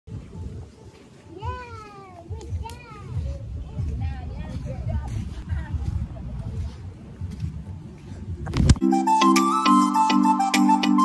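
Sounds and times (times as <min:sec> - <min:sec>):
steady low rumble: 0:02.3 - 0:08.8.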